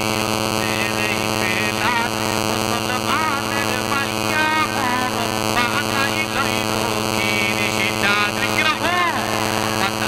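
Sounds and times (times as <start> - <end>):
loud electrical hum: 0.0 - 10.0
man preaching into microphone: 0.0 - 10.0.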